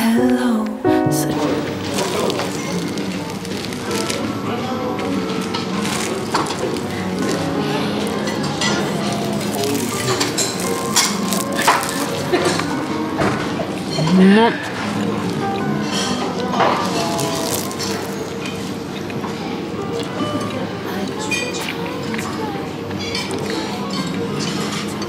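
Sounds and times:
background music: 0.0s - 25.0s
pastry crackling and crunching: 1.4s - 19.2s, 19.8s - 25.0s.

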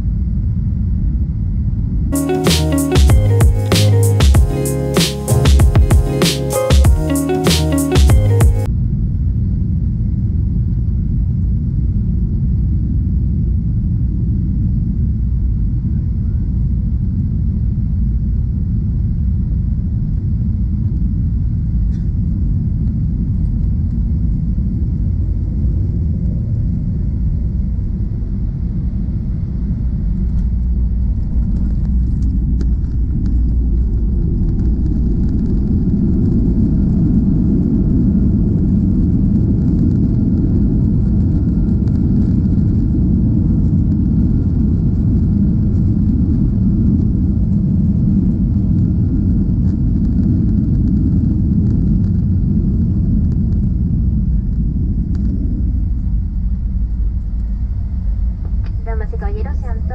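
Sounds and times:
airplane cabin engine rumble: 10.6s - 59.9s.

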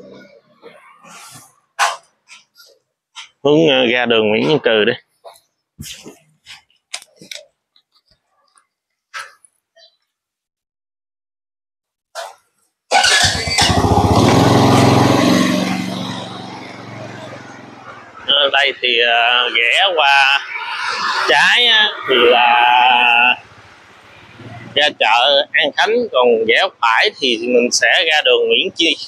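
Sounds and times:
dog barking: 1.8s - 2.1s, 12.2s - 12.4s
motorbike starter: 12.9s - 15.7s
motorbike engine running: 13.1s - 18.2s.

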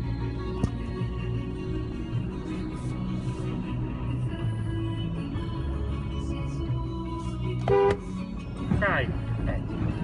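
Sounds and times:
car radio music: 0.0s - 10.0s.

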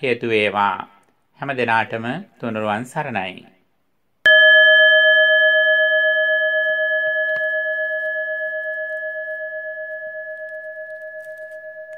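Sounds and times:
struck bell ringing: 4.3s - 11.9s.

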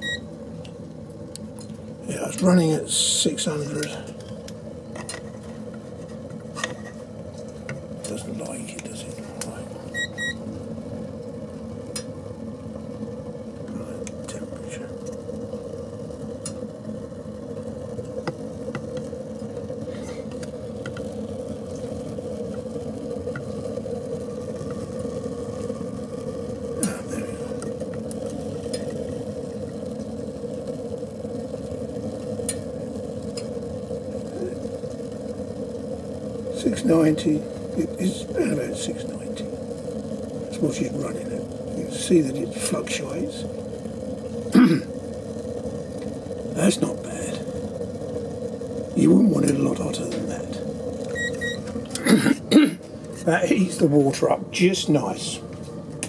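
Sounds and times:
stove boiler humming: 0.0s - 56.0s.

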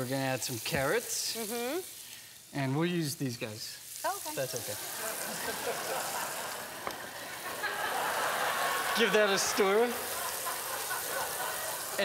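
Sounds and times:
vegetables sizzling in pot: 0.0s - 12.0s.

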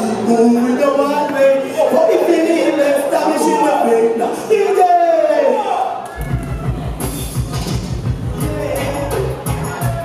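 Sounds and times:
man's voice over public address: 0.0s - 6.0s
backing track with heavy bass beat: 6.2s - 10.0s.

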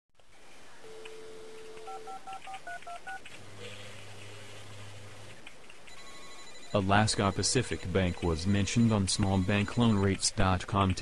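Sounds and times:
telephone dial tone: 0.9s - 3.9s, 5.9s - 6.7s
touch-tone key beeps: 5.9s - 10.2s.

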